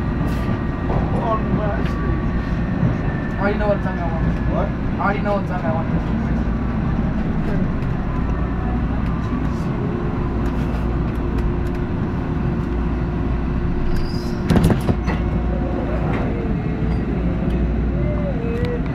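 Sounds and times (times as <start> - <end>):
train clatter: 0.0 - 12.8, 13.7 - 17.6
subway train rumbling: 0.0 - 18.9.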